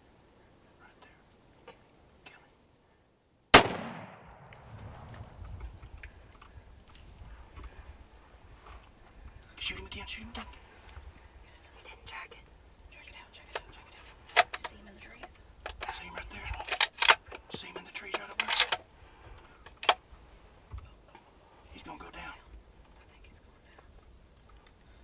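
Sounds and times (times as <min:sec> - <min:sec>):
people whispering: 0:00.3 - 0:02.6, 0:09.3 - 0:16.8, 0:20.7 - 0:24.0.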